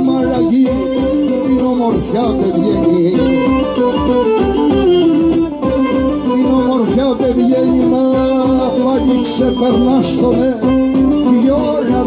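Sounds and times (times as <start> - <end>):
steady drum beat: 0.0 - 12.0
strummed lutes: 0.0 - 12.0.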